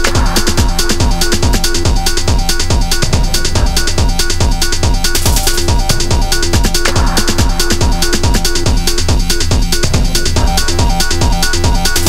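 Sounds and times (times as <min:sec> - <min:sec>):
fast hi-hats: 0:00.0 - 0:12.0
kick drum: 0:00.0 - 0:12.0
stabbed synth chords: 0:00.0 - 0:12.0
tech house dance music: 0:00.0 - 0:12.0.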